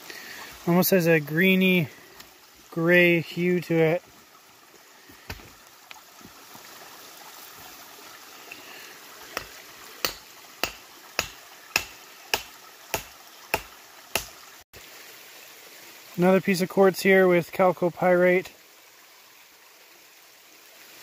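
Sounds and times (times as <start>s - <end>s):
creek water running: 0.0s - 21.0s.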